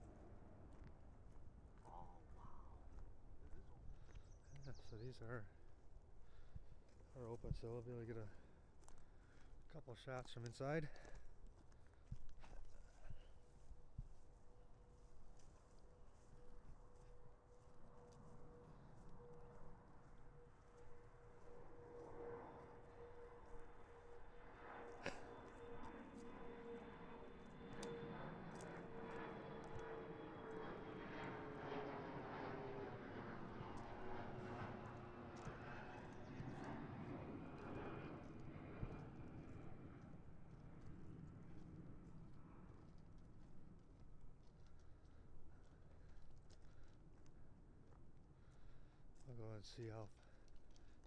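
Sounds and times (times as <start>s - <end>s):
airplane engine drone: 0.0s - 51.0s.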